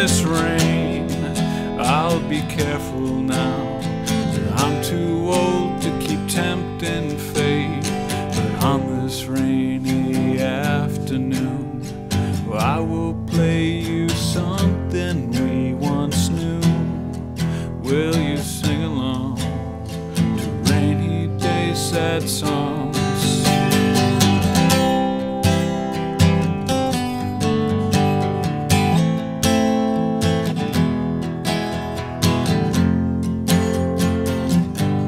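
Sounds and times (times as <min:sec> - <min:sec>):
strummed acoustic guitar: 0:00.0 - 0:35.0.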